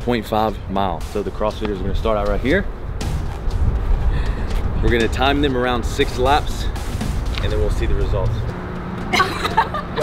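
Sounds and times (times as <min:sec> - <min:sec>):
wind buffeting microphone: 0:00.8 - 0:08.5.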